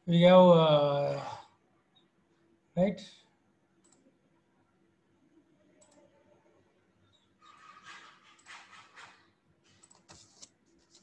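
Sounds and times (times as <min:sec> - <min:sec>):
computer mouse clicks: 0:03.8 - 0:04.1, 0:05.8 - 0:06.1, 0:09.7 - 0:11.0.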